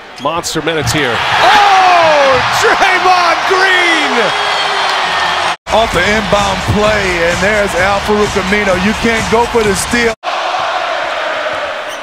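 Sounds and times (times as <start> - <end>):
crowd cheering loudly: 0.6 - 12.0
fans whooping and yelling: 1.2 - 7.2.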